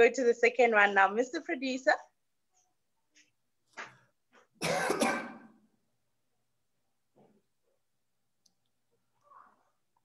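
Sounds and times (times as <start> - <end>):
person coughing: 4.6 - 5.6.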